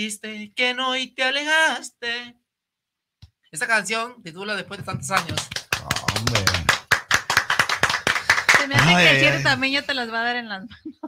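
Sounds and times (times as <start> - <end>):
hands clapping a quick beat: 5.1 - 9.4
man's voice: 5.8 - 6.8, 8.7 - 9.9.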